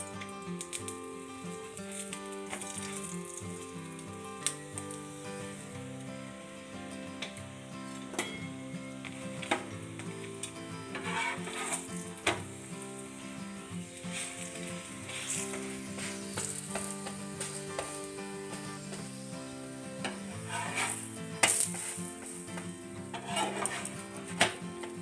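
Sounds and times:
flatbread sizzling in a pan: 0.0s - 25.0s
soft background music: 0.0s - 25.0s.

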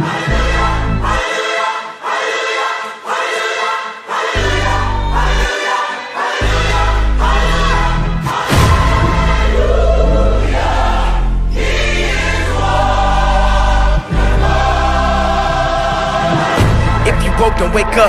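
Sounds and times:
gospel choir singing: 0.0s - 18.0s
deep bass notes: 6.5s - 18.0s
heavy hit: 8.3s - 10.6s.

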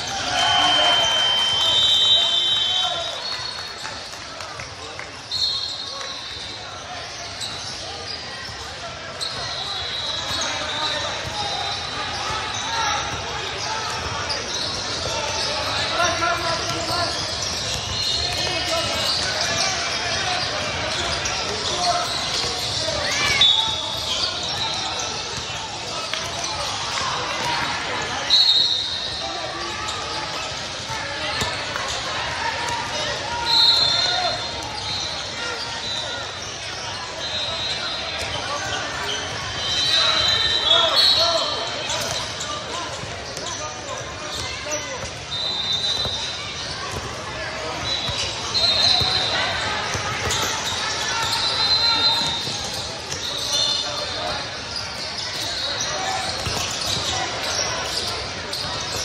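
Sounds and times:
shoe squeaks: 5.2s - 26.7s, 27.3s - 59.0s
ball bouncing on court: 16.6s - 19.6s, 44.3s - 45.3s, 45.9s - 51.4s, 52.2s - 53.4s, 56.2s - 57.6s.

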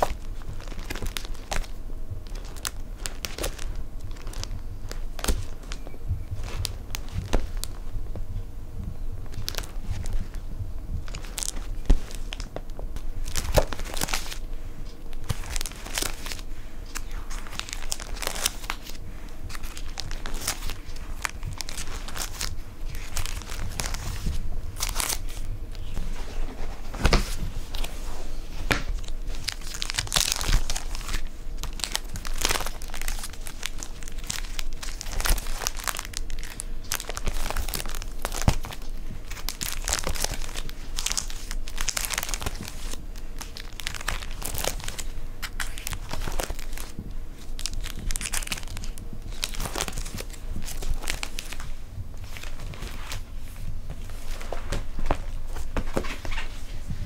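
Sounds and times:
plastic binder pages crinkling: 0.0s - 8.2s, 9.2s - 57.0s
paper being handled: 11.0s - 57.0s.

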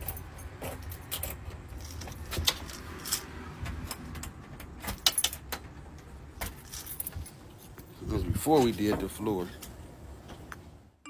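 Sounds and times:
light metallic jangling and clicks: 4.8s - 5.7s, 6.5s - 7.9s.

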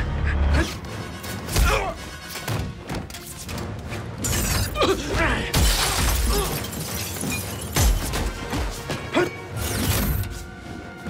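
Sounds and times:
action film music: 0.0s - 11.0s
glass shattering: 4.2s - 4.8s, 5.5s - 8.5s.

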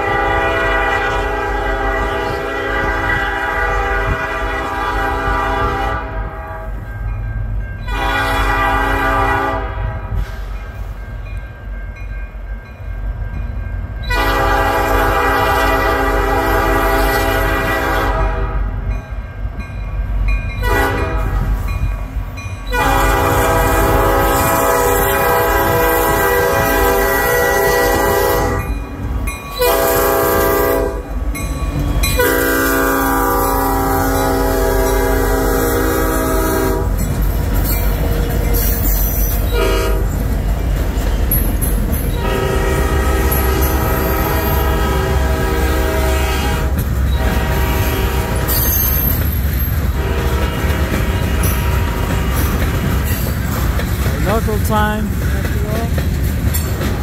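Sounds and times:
locomotive air horn blasts: 0.0s - 6.8s, 7.9s - 10.3s, 14.1s - 18.7s, 20.6s - 21.6s, 22.7s - 28.7s, 29.6s - 31.1s, 32.2s - 37.0s, 39.5s - 40.1s, 42.2s - 48.9s, 49.9s - 52.6s
diesel engines rumbling: 14.2s - 57.0s.

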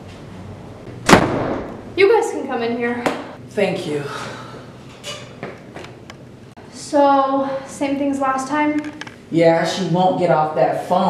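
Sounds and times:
door banging shut: 1.0s - 1.8s.

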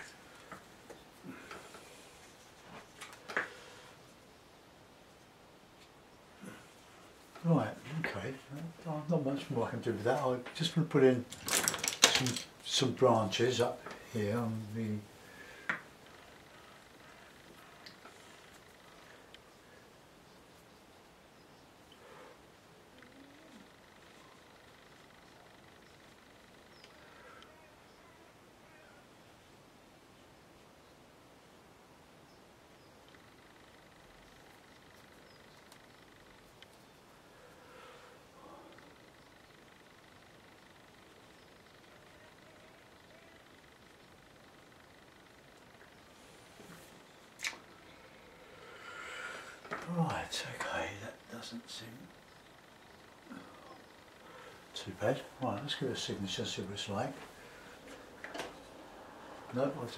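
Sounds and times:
faint steady hiss: 0.0s - 59.9s.

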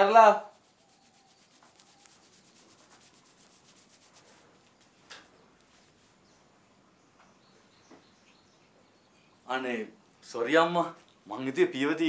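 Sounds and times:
towel rubbing on hair: 0.0s - 5.0s.

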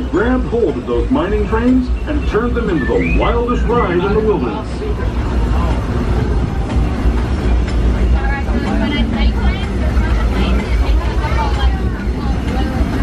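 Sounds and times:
people talking: 0.0s - 13.0s
train car rumbling along track: 0.0s - 13.0s.

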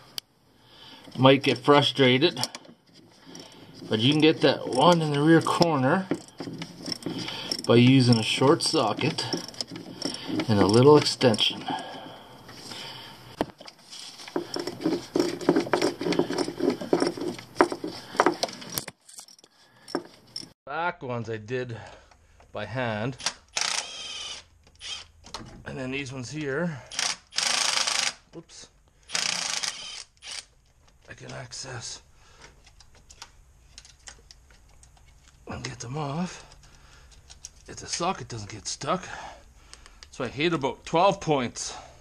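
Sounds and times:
hand ratchet clicking: 1.0s - 11.6s, 14.2s - 20.5s, 23.2s - 25.0s, 26.9s - 28.2s, 29.1s - 30.5s
metallic clinks of tools: 1.1s - 11.8s, 14.3s - 20.6s.

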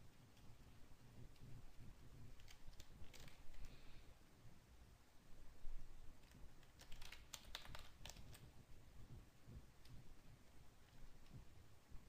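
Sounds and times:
computer keyboard clicks: 2.4s - 3.7s, 6.2s - 8.5s.

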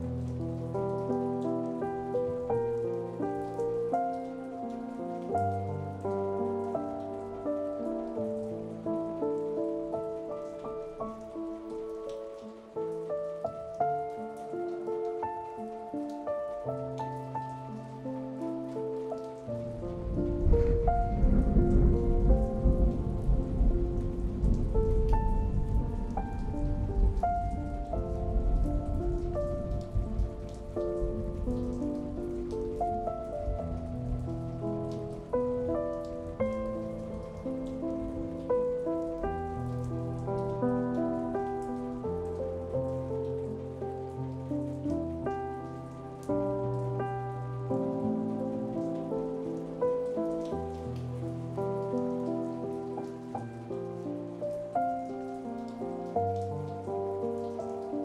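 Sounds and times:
gentle solo piano music: 0.0s - 58.0s
steady rain: 0.0s - 58.0s
deep rumble: 20.1s - 24.8s.

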